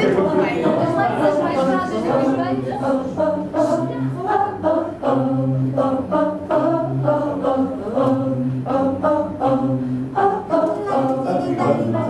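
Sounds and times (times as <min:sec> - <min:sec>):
voices singing in harmony: 0:00.0 - 0:12.0.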